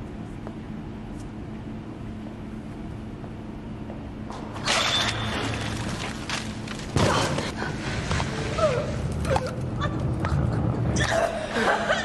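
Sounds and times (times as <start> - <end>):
low rumble with hum: 0.0 - 12.0.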